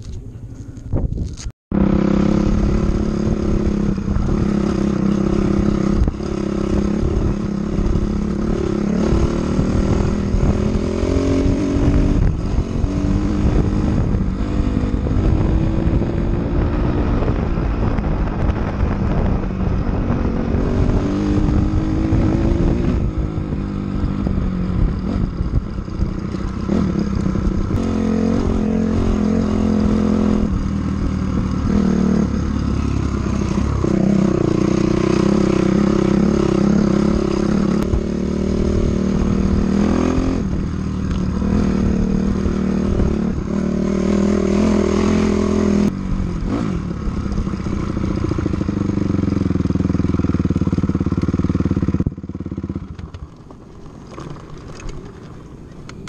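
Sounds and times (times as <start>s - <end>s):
off-road vehicle engine: 0.0s - 56.0s.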